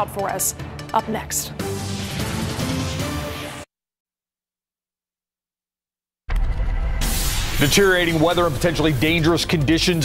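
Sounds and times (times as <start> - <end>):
sound effect with low rumble: 6.3 - 9.2.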